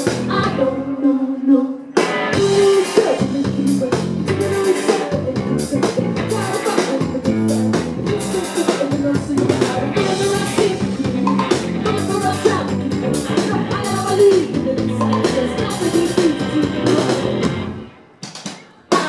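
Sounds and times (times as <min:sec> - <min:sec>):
live pop-rock band playing: 0:00.0 - 0:01.0, 0:01.8 - 0:19.0
person singing: 0:00.0 - 0:17.8, 0:18.5 - 0:19.0.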